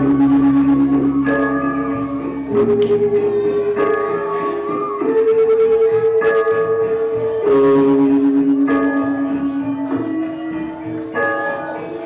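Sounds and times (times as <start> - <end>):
struck metallophone notes: 0.0 - 12.0.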